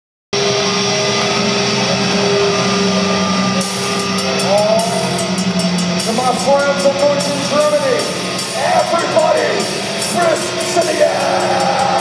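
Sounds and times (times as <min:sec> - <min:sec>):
cymbal strikes: 0:00.4 - 0:12.0
heavy metal band playing: 0:00.4 - 0:12.0.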